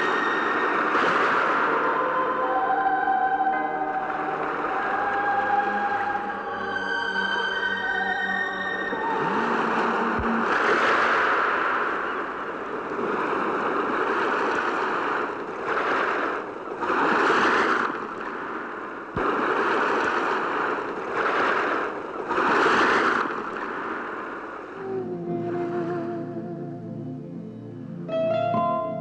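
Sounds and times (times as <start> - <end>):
surf crashing over rocks: 0.0 - 6.5, 8.9 - 26.2
soft background music: 0.0 - 10.5, 24.9 - 29.0.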